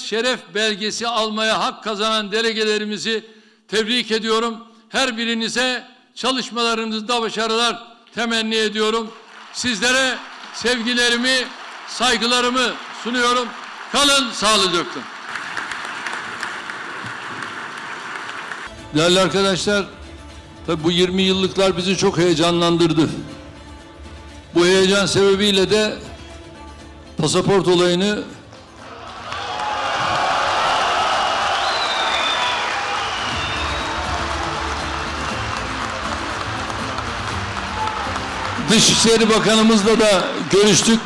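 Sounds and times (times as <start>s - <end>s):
audience applauding: 8.9s - 18.7s, 28.7s - 41.0s.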